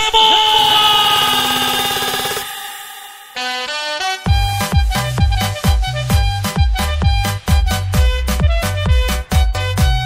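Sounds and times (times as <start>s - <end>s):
long electronic horn-like tone: 0.0s - 5.6s.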